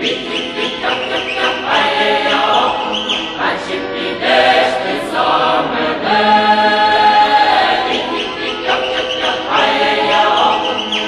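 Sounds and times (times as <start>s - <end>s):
choir singing folk song: 0.0s - 11.0s.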